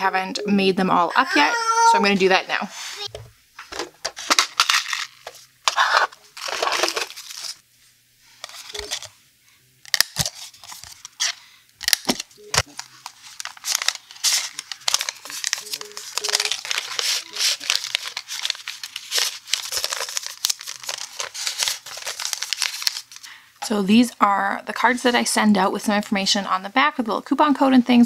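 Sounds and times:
paper rustling and crinkling: 0:03.6 - 0:07.6, 0:08.3 - 0:09.1, 0:10.0 - 0:23.3.

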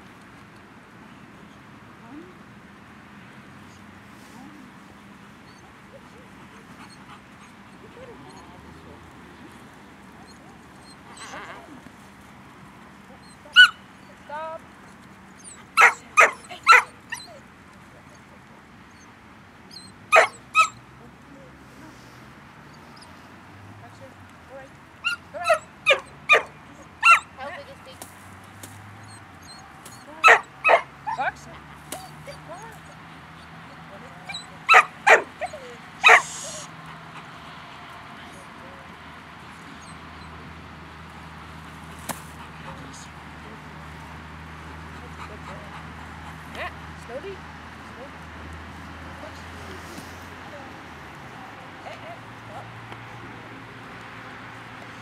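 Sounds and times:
dog barking high-pitched: 0:13.5 - 0:13.8, 0:15.8 - 0:16.9, 0:20.1 - 0:20.8, 0:25.0 - 0:27.3, 0:30.2 - 0:31.3, 0:34.3 - 0:36.7.

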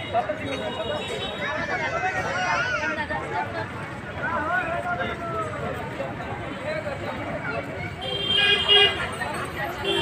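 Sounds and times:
crowd chatter: 0:00.0 - 0:10.0
street traffic: 0:00.0 - 0:10.0.

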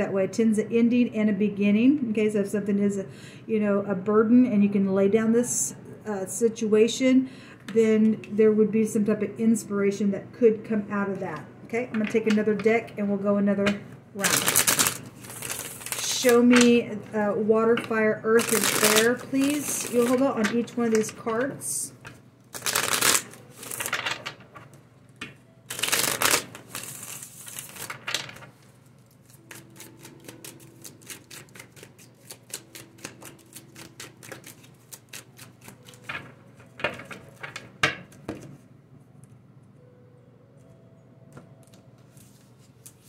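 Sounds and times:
cards swishing while shuffled: 0:22.6 - 0:23.9.

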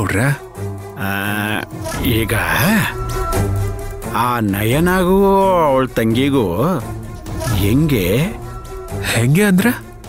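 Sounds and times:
background music with low drone: 0:00.0 - 0:10.0.

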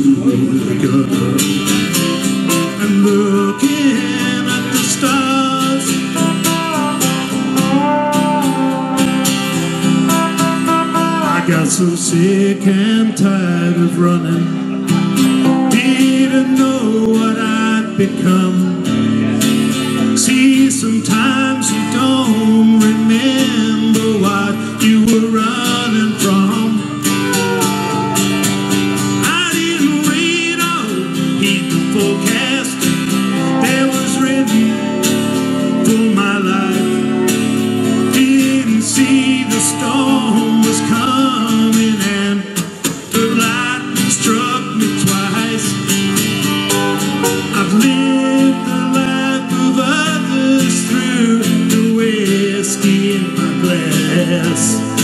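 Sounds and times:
strummed guitar: 0:00.0 - 0:55.0
steel guitar sliding melody: 0:00.4 - 0:55.0.

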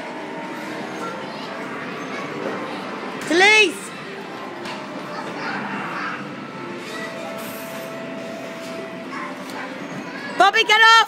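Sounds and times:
distant children's voices: 0:00.0 - 0:03.2, 0:03.9 - 0:10.5.

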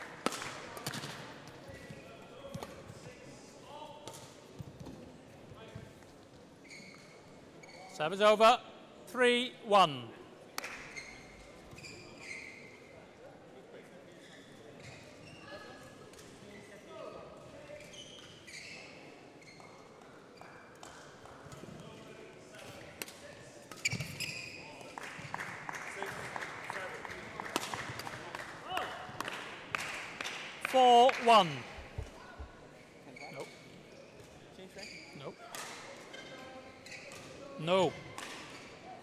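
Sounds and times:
shoes on court floor: 0:31.2 - 0:32.6.

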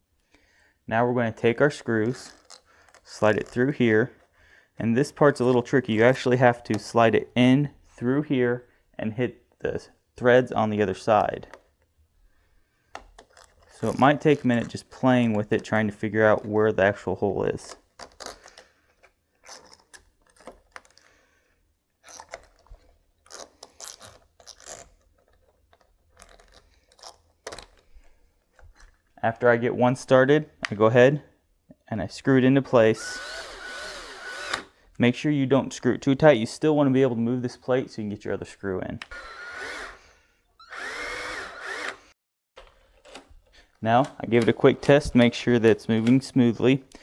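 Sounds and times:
cordless drill driving screw: 0:33.0 - 0:34.8, 0:39.1 - 0:40.0, 0:40.6 - 0:42.2.

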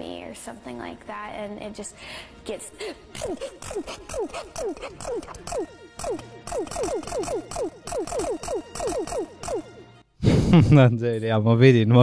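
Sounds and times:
electronic synth hits: 0:03.2 - 0:09.8.

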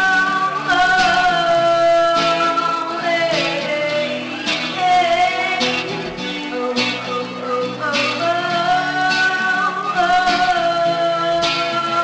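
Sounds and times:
person singing long notes: 0:00.0 - 0:12.0
strummed acoustic guitar: 0:00.0 - 0:12.0.

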